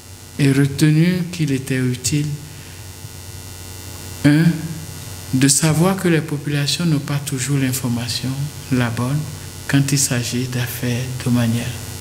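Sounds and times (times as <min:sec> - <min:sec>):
electrical mains hum: 0:00.0 - 0:12.0
man speaking: 0:00.4 - 0:02.6, 0:04.2 - 0:11.8.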